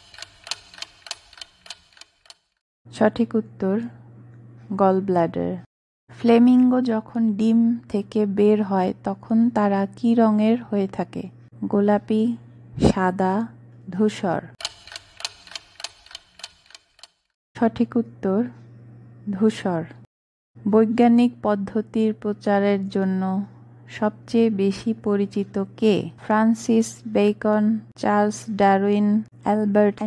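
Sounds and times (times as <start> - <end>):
clock-like ticking: 0.0 - 2.5, 14.6 - 17.2.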